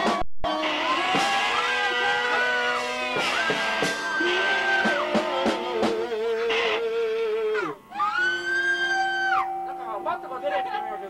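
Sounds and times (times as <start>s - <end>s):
high siren-like tone: 0.1s - 11.0s
punk band playing live: 1.1s - 6.1s.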